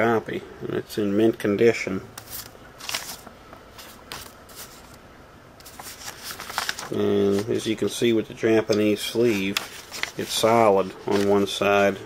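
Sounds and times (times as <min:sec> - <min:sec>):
paper rustling: 0:02.2 - 0:05.0, 0:05.6 - 0:07.7, 0:08.7 - 0:11.9.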